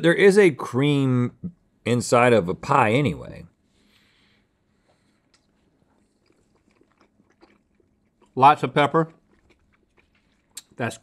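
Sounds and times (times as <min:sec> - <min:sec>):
quiet chewing: 0:03.8 - 0:11.0.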